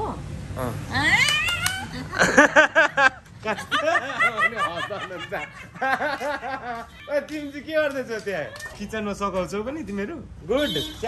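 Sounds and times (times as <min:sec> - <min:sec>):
woman laughing: 0:01.8 - 0:07.2, 0:08.2 - 0:08.8.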